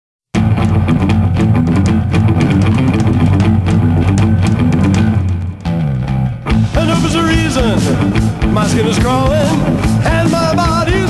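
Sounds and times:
rock guitar and drums: 0.3 - 11.0.

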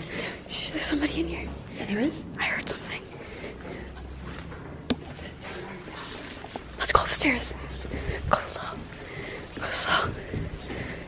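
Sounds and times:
person whispering: 2.4 - 3.2, 6.8 - 8.9.

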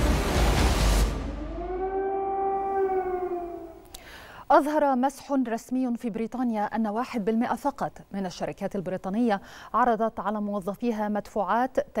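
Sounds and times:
air-raid siren wailing: 1.2 - 3.8.

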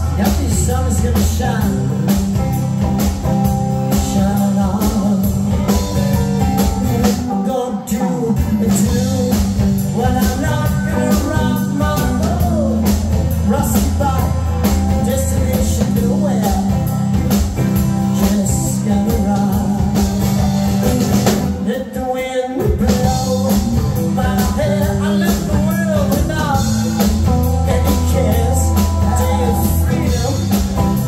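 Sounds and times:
person singing: 0.0 - 2.7, 3.7 - 20.3, 21.5 - 31.0
drum kit: 0.0 - 31.0
electric guitars: 0.0 - 31.0.

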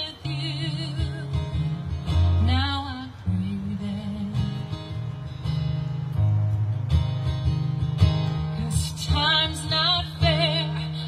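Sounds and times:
woman singing: 0.0 - 4.8, 8.5 - 11.0
acoustic guitar strumming: 0.0 - 11.0.

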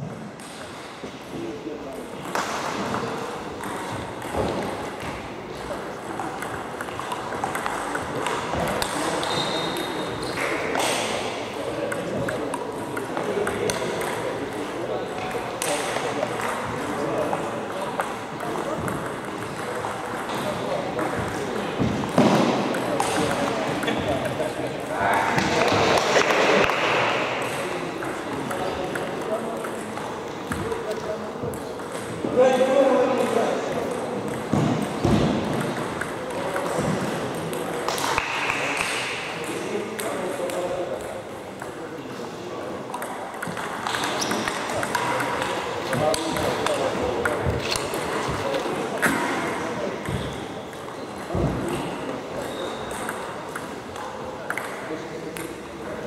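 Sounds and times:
table tennis ball clicking: 42.9 - 48.2, 54.5 - 55.6.

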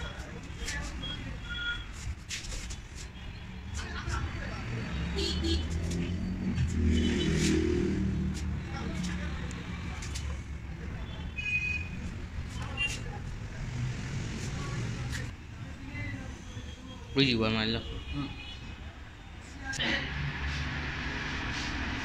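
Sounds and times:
vehicle rumble: 0.0 - 16.4, 19.5 - 22.0.

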